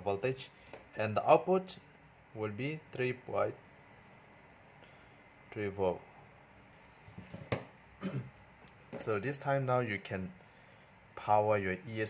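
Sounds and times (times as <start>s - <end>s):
soft handling sounds: 6.7s - 7.6s, 8.4s - 9.3s.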